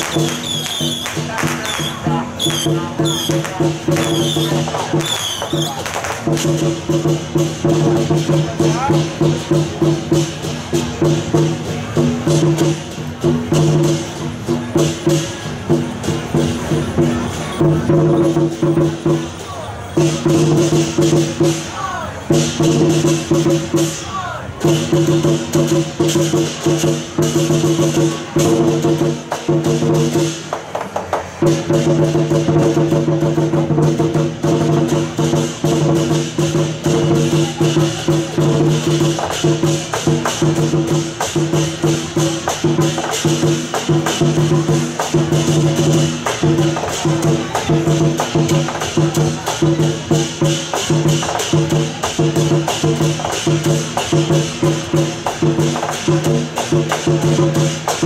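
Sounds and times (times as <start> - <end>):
fast percussion with clappers: 0.0 - 58.0
small cymbals: 0.0 - 58.0.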